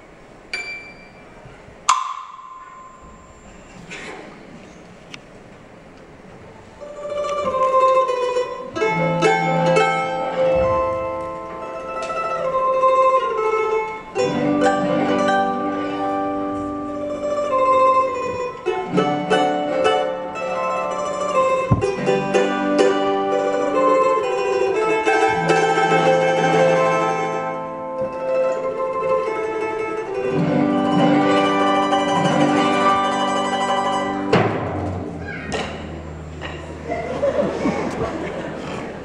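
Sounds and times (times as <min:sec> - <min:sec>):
plucked domra melody: 0:00.6 - 0:03.8, 0:06.8 - 0:37.0
sharp struck ringing note: 0:01.9 - 0:03.7.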